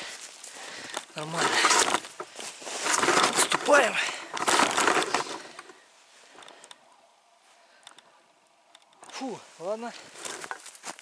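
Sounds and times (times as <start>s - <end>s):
footsteps crunching through snow: 0.0s - 5.4s, 9.1s - 11.0s.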